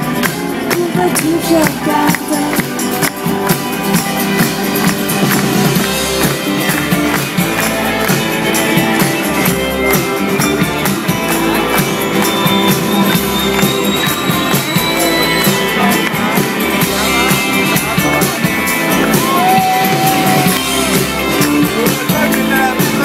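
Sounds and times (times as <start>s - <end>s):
live band playing loudly: 0.0s - 23.0s.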